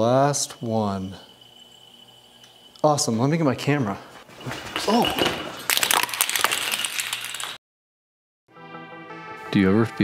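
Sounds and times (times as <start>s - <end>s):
small balls clattering on concrete: 4.7s - 7.6s.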